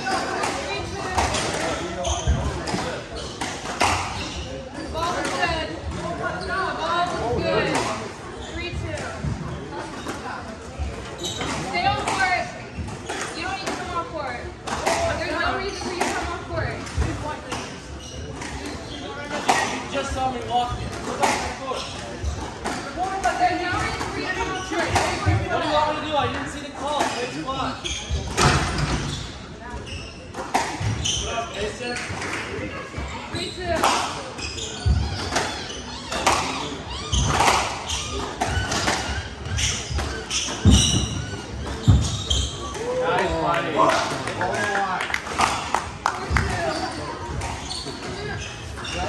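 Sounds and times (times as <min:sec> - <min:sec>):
spectators chattering: 0:00.0 - 0:49.0.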